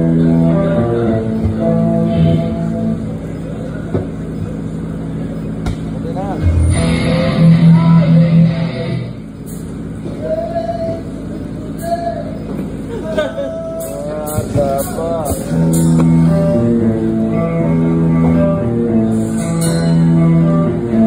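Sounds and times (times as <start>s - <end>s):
electric guitar: 0.0s - 3.2s, 5.7s - 9.4s, 15.2s - 21.0s
bass guitar: 0.0s - 10.3s, 13.9s - 21.0s
live rock band: 6.4s - 9.2s, 15.5s - 21.0s
person singing: 6.5s - 9.0s.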